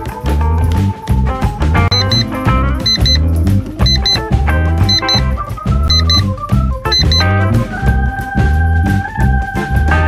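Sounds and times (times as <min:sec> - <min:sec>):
upbeat jazzy music: 0:00.0 - 0:10.0
walking bass line: 0:00.2 - 0:10.0
short high beeps: 0:01.9 - 0:03.2, 0:03.8 - 0:04.2, 0:04.9 - 0:05.3, 0:05.9 - 0:06.2, 0:06.9 - 0:07.3.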